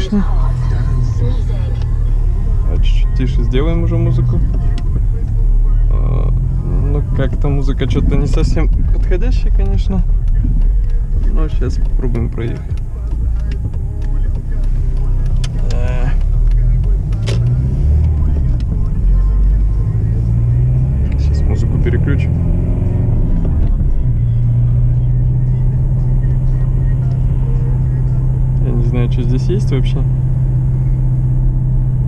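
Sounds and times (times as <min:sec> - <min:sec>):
car engine inside cabin: 0:00.0 - 0:32.0
road noise: 0:00.0 - 0:32.0.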